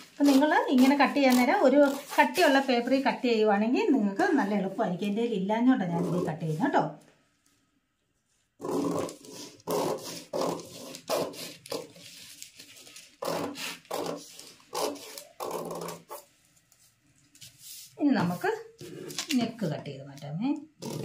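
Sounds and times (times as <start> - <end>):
scissors cutting cloth: 8.9 - 12.4, 13.2 - 16.2.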